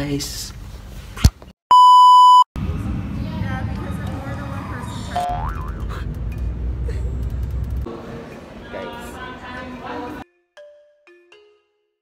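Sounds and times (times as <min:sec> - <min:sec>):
loud electronic beep: 0:01.7 - 0:02.5.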